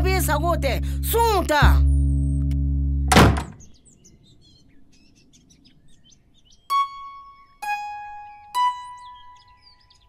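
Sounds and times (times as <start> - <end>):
birds chirping: 0.0 - 10.0
wooden door slamming: 3.1 - 3.6
music drone: 6.7 - 9.5.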